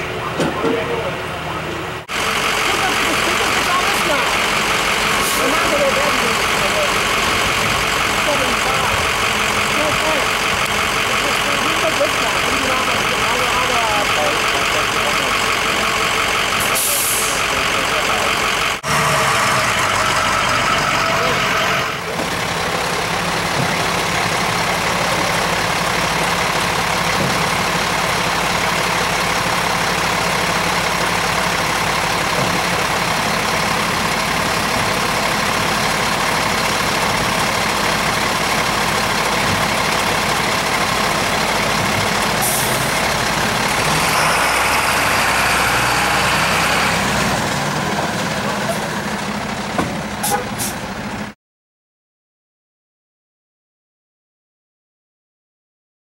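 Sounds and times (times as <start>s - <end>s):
diesel engine idling: 0.0s - 51.4s.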